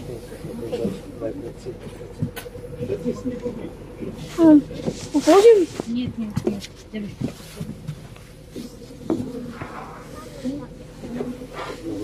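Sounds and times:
bus engine low hum: 0.0 - 12.0
indistinct voices: 0.0 - 12.0
thin constant whine: 0.0 - 12.0.

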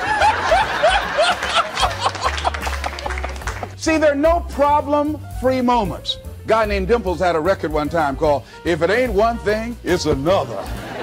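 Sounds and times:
audience laughing: 0.0 - 3.4, 10.4 - 11.0.

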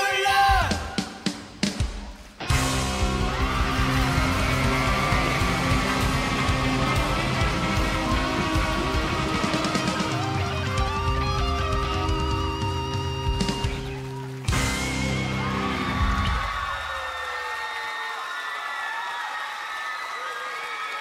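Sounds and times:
live rock band playing: 0.7 - 16.5.

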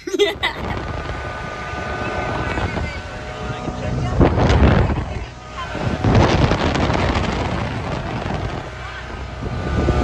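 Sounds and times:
motorboat engine hum: 0.0 - 10.0
wind buffeting microphone: 0.2 - 10.0.

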